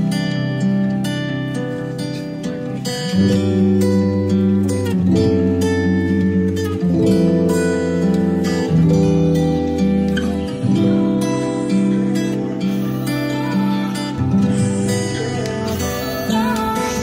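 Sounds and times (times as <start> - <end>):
plucked acoustic guitar: 0.0 - 17.0.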